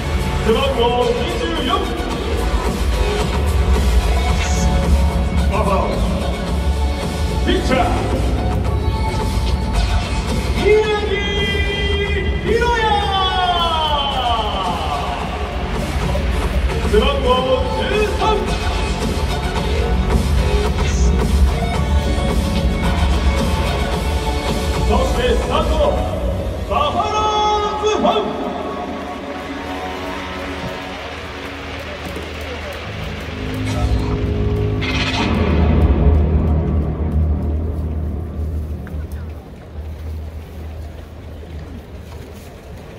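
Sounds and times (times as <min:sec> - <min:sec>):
background music: 0:00.0 - 0:42.9
stadium announcer calling out: 0:00.2 - 0:02.4, 0:04.1 - 0:06.6, 0:07.3 - 0:08.7, 0:10.3 - 0:19.2, 0:24.7 - 0:31.2.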